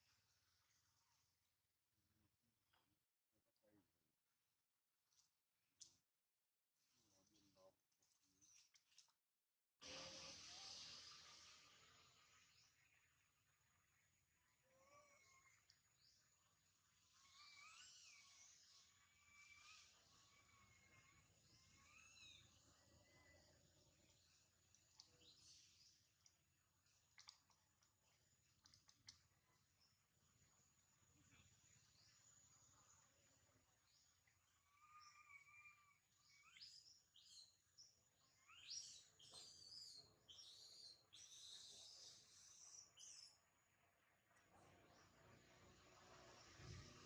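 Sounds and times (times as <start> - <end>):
faint high-pitched animal calls: 14.5 - 15.8, 17.0 - 23.6, 34.5 - 37.3.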